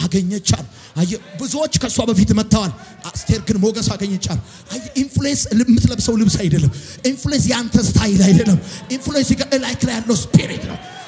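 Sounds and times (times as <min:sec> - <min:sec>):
man preaching through microphone: 0:00.0 - 0:11.0.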